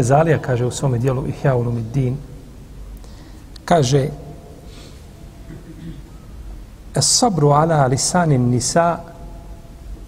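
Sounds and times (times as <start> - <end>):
man speaking: 0.0 - 2.3, 3.6 - 4.4, 7.0 - 9.1.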